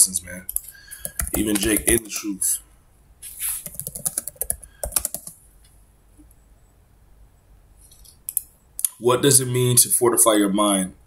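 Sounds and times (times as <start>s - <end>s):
typing on computer keyboard: 0.5s - 2.1s, 3.6s - 5.4s.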